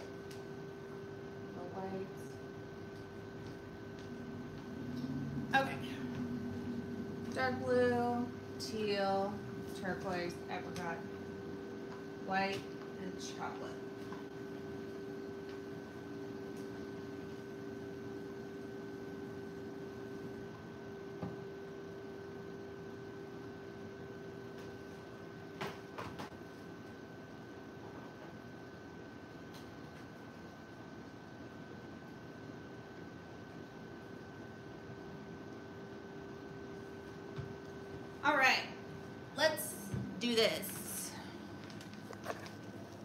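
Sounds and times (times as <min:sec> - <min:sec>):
steady electrical hum: 0:00.0 - 0:43.0.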